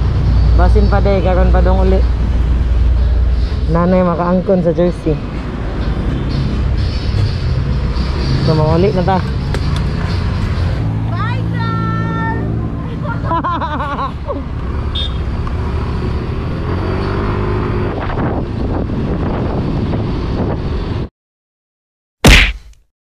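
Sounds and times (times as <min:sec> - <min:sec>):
passing traffic: 0:00.0 - 0:21.1
wind: 0:00.0 - 0:21.1.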